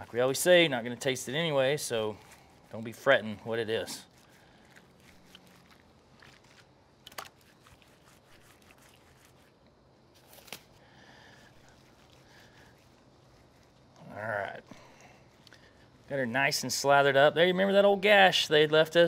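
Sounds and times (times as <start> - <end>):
wet rubbing on meat: 0.0 - 19.0.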